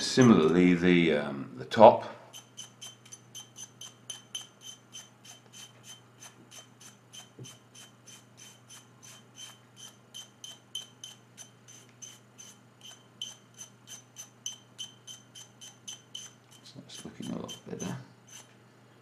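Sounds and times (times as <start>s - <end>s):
toothbrush scrubbing metal part: 2.3s - 18.5s.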